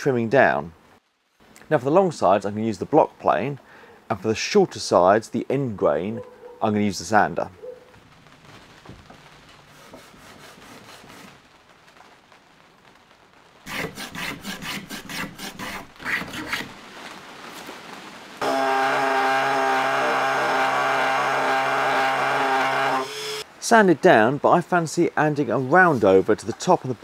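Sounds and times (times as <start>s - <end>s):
block plane strokes on wood: 9.8s - 11.4s, 13.7s - 16.7s
power sander with vacuum running: 18.4s - 23.4s.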